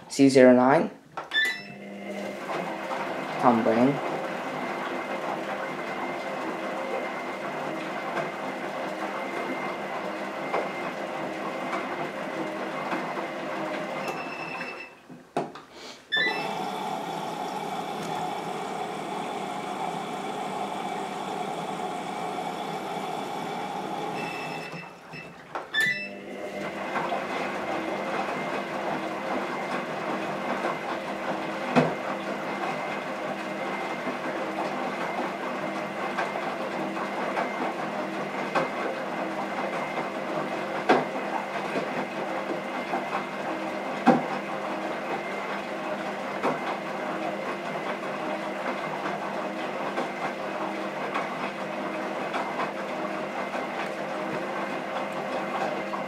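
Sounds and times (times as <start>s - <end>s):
motor whine: 16.2s - 25.2s.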